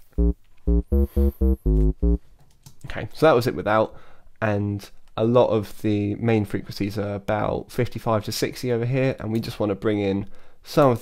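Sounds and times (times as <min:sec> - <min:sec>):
synth bass line: 0:00.0 - 0:02.2.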